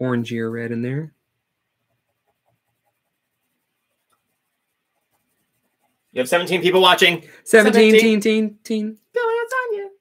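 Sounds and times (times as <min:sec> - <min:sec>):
coloured pencil scratching on paper: 0:01.7 - 0:07.0.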